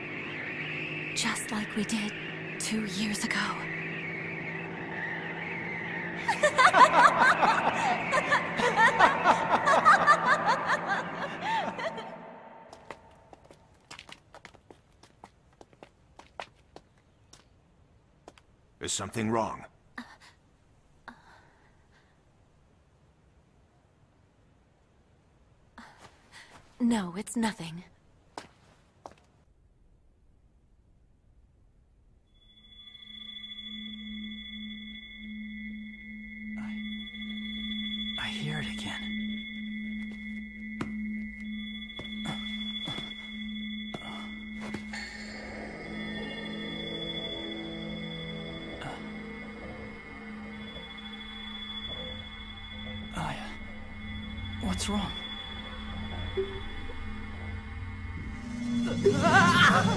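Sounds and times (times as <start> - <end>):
eerie ringing drone: 0.0 - 13.4, 32.3 - 59.9
soft footsteps: 12.7 - 18.6, 28.3 - 29.4, 40.0 - 43.3.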